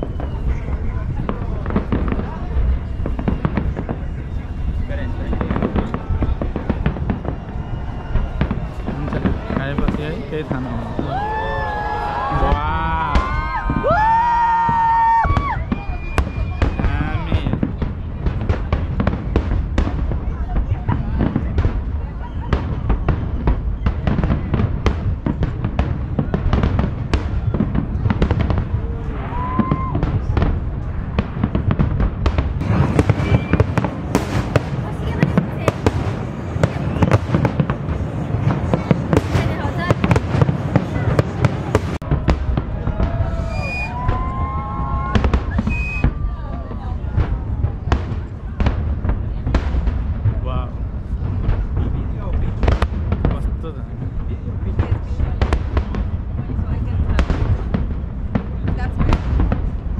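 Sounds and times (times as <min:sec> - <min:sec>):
fireworks bangs and crackles: 0:00.0 - 0:59.9.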